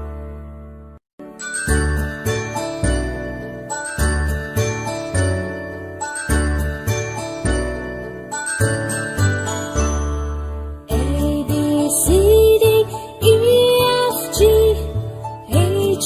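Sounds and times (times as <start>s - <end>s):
bell-like melody notes: 1.2s - 10.9s.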